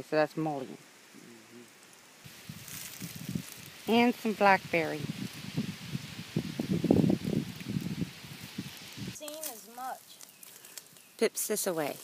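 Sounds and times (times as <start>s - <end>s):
rustling of brush and leaves: 0.0s - 12.0s.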